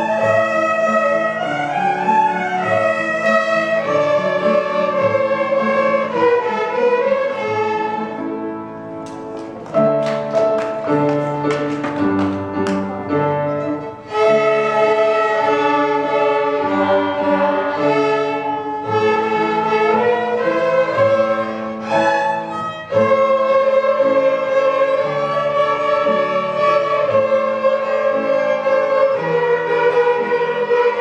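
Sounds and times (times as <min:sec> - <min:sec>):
children's violins playing slow tune: 0:00.0 - 0:09.2, 0:12.6 - 0:31.0.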